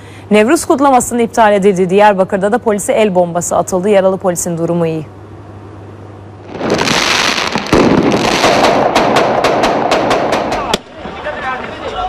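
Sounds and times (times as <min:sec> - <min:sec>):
rapid sharp cracks: 0:06.6 - 0:10.9.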